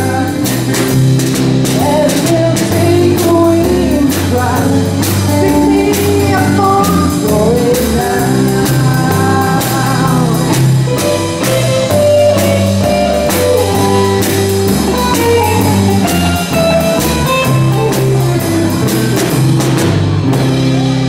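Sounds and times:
live band instrumental: 0.0s - 21.0s
drum strikes: 9.8s - 21.0s.

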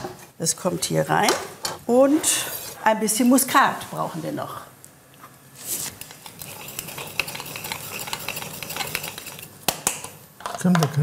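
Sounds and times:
nutmeg mill grinding: 5.8s - 10.1s.

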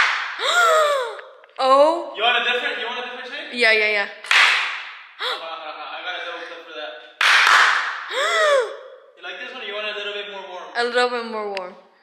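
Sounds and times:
hand clap with echo: 0.0s - 0.4s, 4.2s - 5.0s, 7.2s - 8.1s
woman exclaiming oh: 0.4s - 1.2s, 8.1s - 8.8s.

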